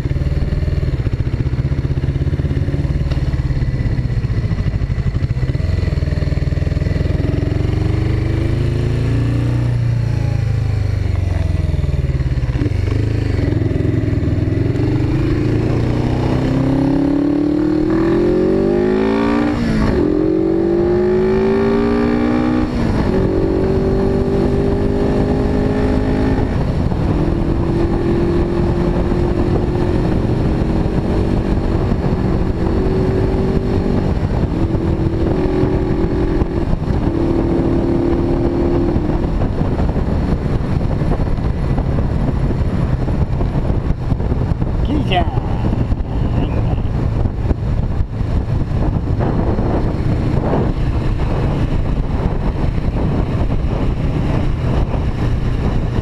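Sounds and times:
motorcycle engine accelerating: 0.0 - 56.0.

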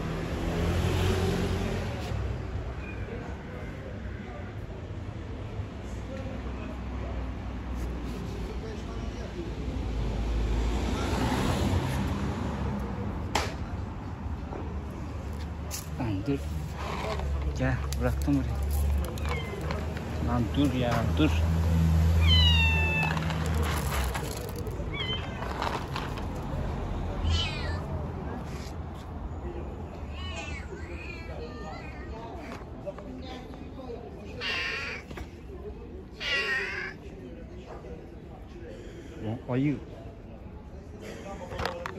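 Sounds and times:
cat meowing: 19.1 - 19.8, 22.2 - 23.2, 24.9 - 25.5, 27.2 - 27.9, 34.4 - 35.0, 36.2 - 37.0.

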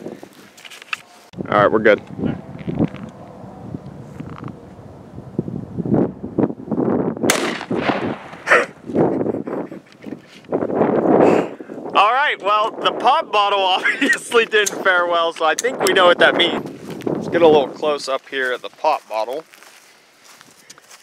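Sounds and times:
rifle shot: 7.3 - 8.5.

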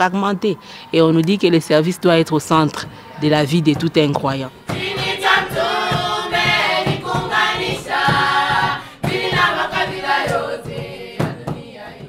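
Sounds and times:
women singing in chorus: 4.6 - 12.0.

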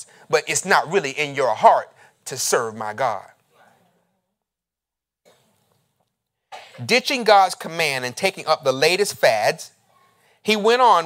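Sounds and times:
man preaching: 0.0 - 3.4, 6.8 - 9.8, 10.4 - 11.0
man clearing his throat: 6.5 - 6.9.

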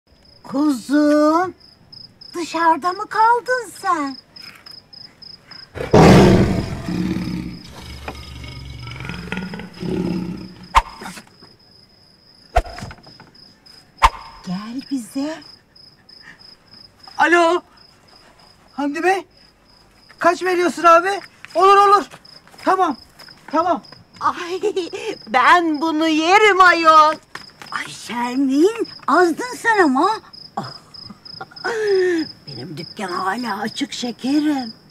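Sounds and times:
crickets chirping: 0.1 - 34.9.

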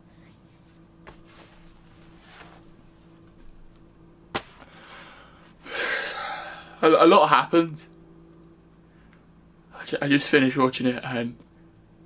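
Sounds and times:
man's loud noisy breath: 4.7 - 6.8
man speaking: 9.8 - 11.4.

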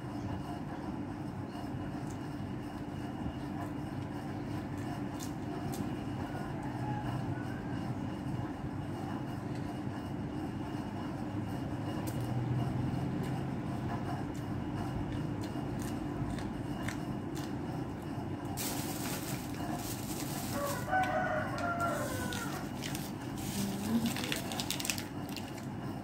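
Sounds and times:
constant hum: 0.0 - 26.0.

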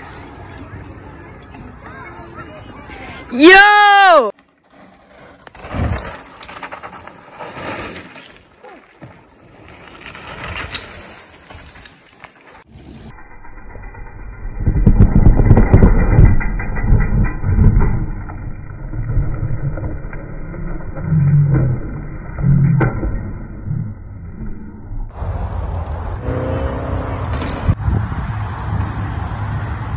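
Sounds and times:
bike tyres rolling on dirt: 4.0 - 22.4
bike carving through loose dirt: 4.0 - 22.5
bike crash sliding into dirt: 4.7 - 13.1.

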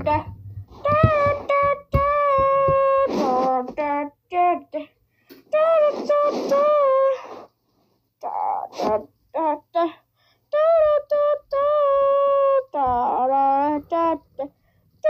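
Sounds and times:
child singing high notes: 0.0 - 7.4, 8.2 - 14.5.

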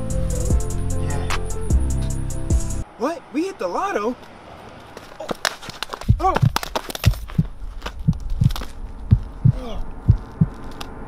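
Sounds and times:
person falling on concrete: 4.9 - 9.3
heartbeat sound effect: 6.1 - 10.6.

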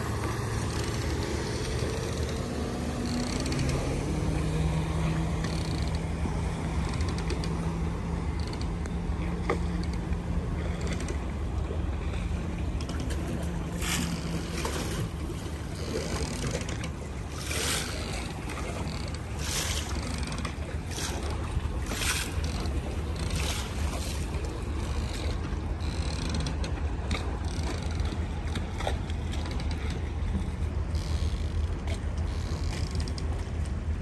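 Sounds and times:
outboard motor humming: 0.0 - 34.0
water splashing: 12.5 - 25.4.

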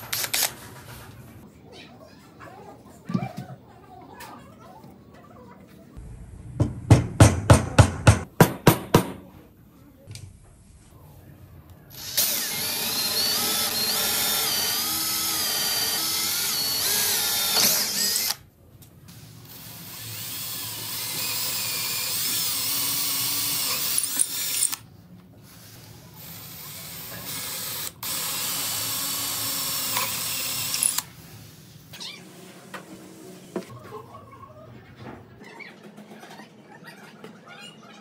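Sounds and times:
cordless drill boring into wood: 12.0 - 18.4, 20.0 - 24.8, 26.9 - 31.0.

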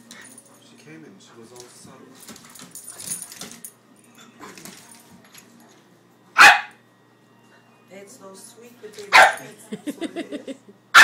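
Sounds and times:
dog barking: 6.4 - 6.8, 9.1 - 9.5.

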